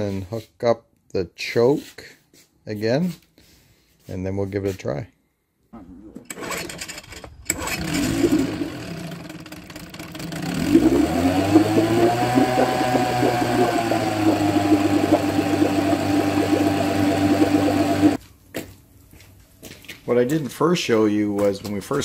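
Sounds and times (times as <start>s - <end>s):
outboard motor pull-start: 5.8s - 18.2s
outboard motor running: 7.6s - 18.2s.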